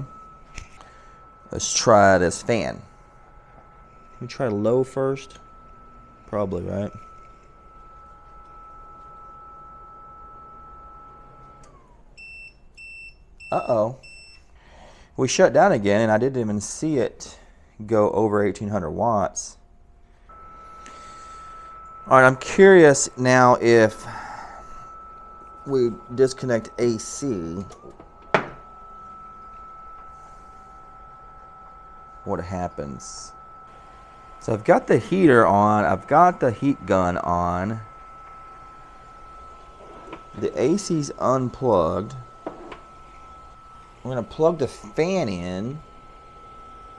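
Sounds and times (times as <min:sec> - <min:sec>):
power station alarm beeps: 0:00.0 - 0:17.5, 0:19.3 - 0:46.9
appliance motors whining: 0:00.0 - 0:17.6, 0:18.2 - 0:46.9
low hum: 0:00.0 - 0:46.9
space heater and heat gun whirring: 0:00.0 - 0:46.9.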